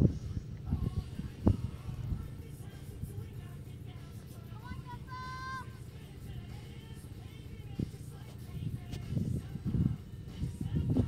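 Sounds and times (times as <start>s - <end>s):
wind rumbling on microphone: 0.0s - 5.6s, 6.4s - 11.0s
person calling out high: 4.6s - 5.8s.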